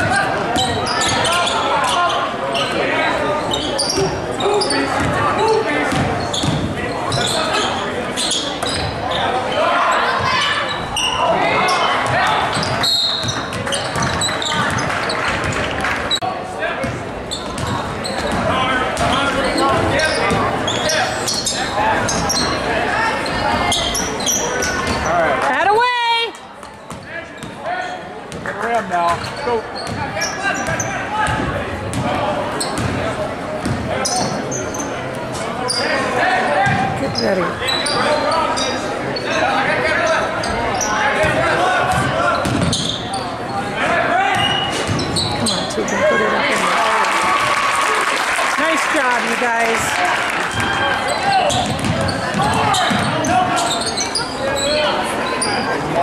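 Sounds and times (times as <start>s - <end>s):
crowd hubbub: 0.0s - 56.0s.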